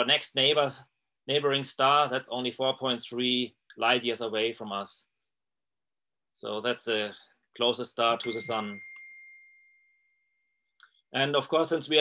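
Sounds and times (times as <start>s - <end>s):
high ding: 8.2s - 10.7s.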